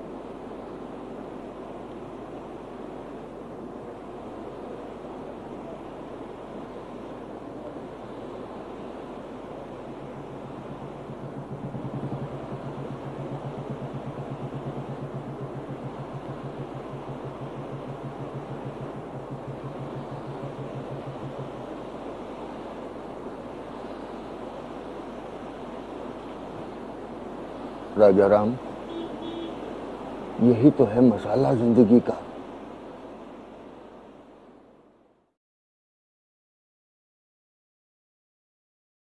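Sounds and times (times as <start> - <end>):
steady rushing noise: 0.0 - 35.0
low hum: 9.1 - 27.8.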